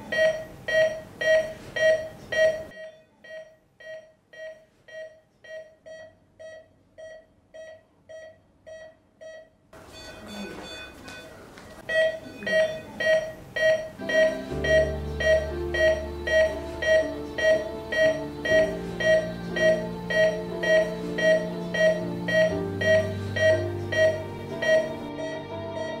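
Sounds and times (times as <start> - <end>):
patient monitor beeping: 0.0 - 26.0
low musical score: 14.0 - 26.0.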